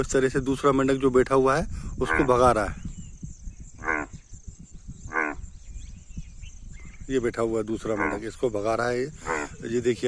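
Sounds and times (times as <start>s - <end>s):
bullfrog croaking: 2.0s - 2.6s, 3.7s - 4.4s, 5.0s - 5.6s, 7.7s - 10.0s.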